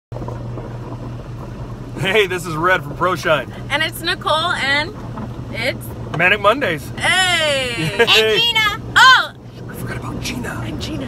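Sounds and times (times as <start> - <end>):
car cabin low hum: 0.2 - 11.0.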